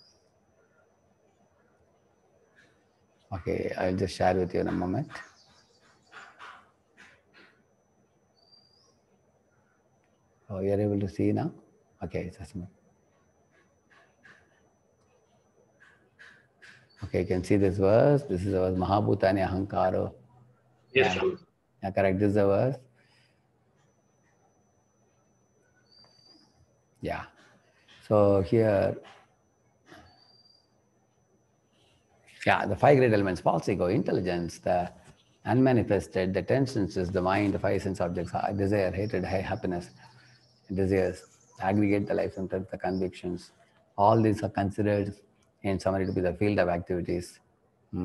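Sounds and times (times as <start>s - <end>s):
faint high chirp: 0.0s - 1.8s, 8.3s - 18.5s, 23.0s - 44.4s, 45.8s - 46.4s
faint high-pitched tone: 21.0s - 21.4s.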